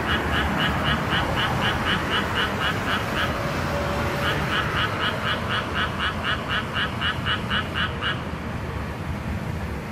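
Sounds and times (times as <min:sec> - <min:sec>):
frog croaking: 0:00.0 - 0:08.3
distant traffic hum: 0:00.0 - 0:09.9.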